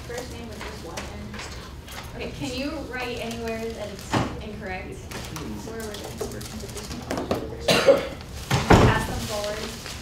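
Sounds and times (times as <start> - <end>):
murmur of voices: 0.0 - 9.7
person coughing: 7.6 - 8.2.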